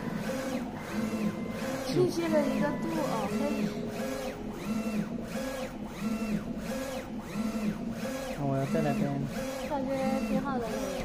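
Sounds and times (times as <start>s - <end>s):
printer carriage motor whine: 0.0s - 11.0s.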